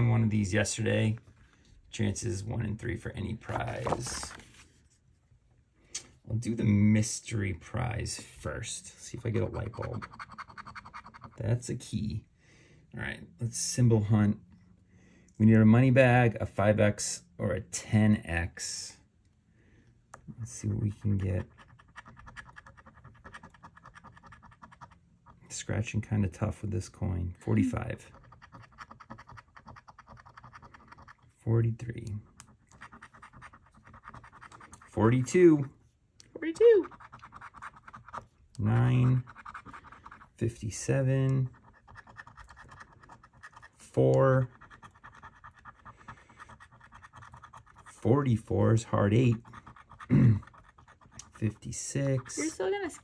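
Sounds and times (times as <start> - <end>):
coin scraping scratch card: 9.3 - 11.4, 20.8 - 25.4, 27.7 - 31.2, 32.2 - 35.4, 36.8 - 53.0.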